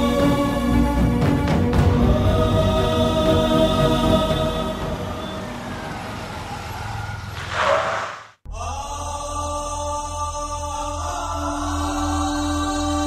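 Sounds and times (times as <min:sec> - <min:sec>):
dramatic chant-like score: 0:00.0 - 0:07.3, 0:08.4 - 0:13.0.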